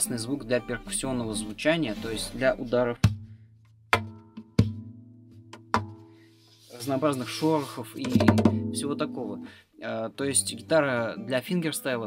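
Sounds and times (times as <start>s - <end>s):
hits on acoustic guitar body: 5.6s - 6.0s, 8.0s - 9.2s
guitar chord ringing: 8.5s - 9.6s.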